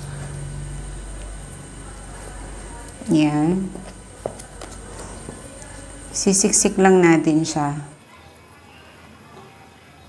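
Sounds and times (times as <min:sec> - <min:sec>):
soil being packed into pot: 0:03.7 - 0:05.8.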